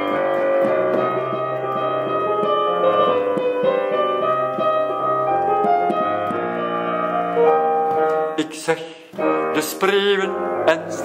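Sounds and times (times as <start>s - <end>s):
solo piano chords: 0.0s - 11.0s.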